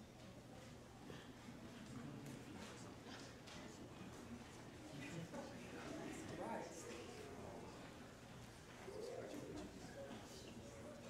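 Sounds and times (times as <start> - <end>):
faint murmur of voices: 0.0 - 11.0.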